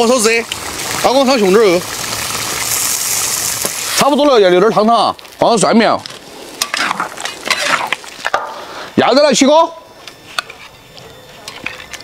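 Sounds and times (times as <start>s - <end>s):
faint hiss: 0.0s - 10.7s.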